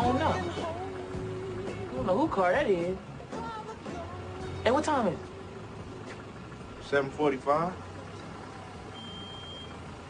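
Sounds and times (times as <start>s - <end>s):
high-pitched beep: 9.0s - 9.8s.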